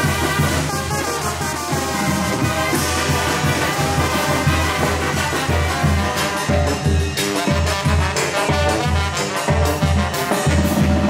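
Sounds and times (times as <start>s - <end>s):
brass band playing dance tune: 0.0s - 11.0s.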